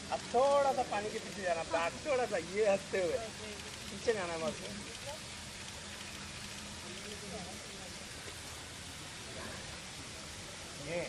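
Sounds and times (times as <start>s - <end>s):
faint voices: 0.0s - 11.0s
steady hiss of water: 0.0s - 11.0s.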